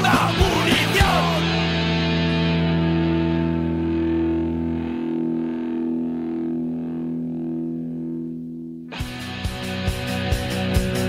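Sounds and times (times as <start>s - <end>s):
distorted electric guitar chord ringing: 0.0s - 11.0s.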